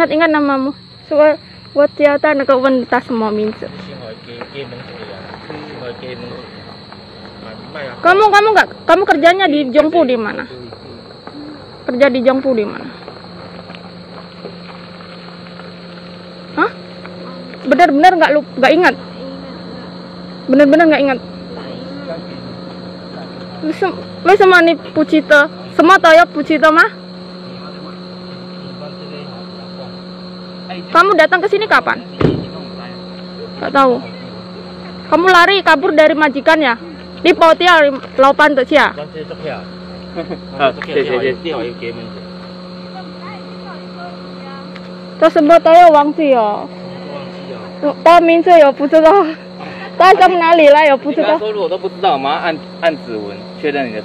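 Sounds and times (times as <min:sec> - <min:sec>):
insects trilling: 0:00.0 - 0:54.0
steady low hum: 0:00.0 - 0:54.0.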